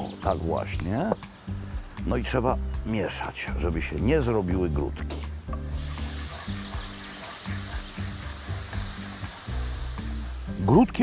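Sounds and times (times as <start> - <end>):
background music: 0.0 - 11.0
roux sizzling in a frying pan: 5.6 - 11.0.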